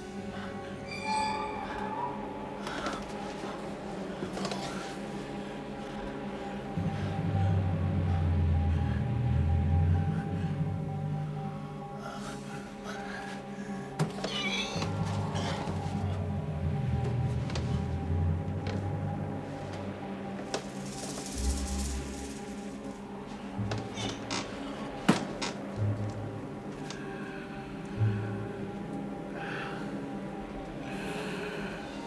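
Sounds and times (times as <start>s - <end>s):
sustained low film score tones: 0.0s - 32.0s.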